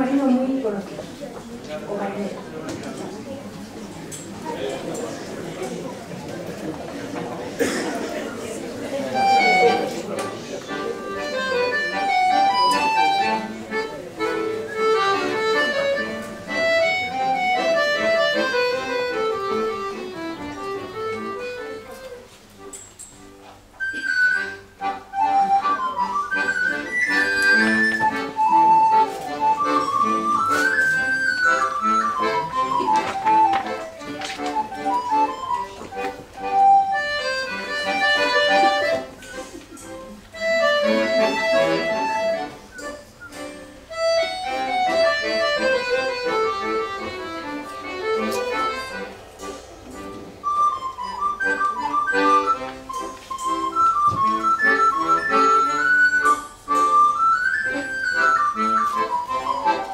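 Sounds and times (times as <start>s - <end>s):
accordion playing folk dance tune: 7.2s - 59.9s.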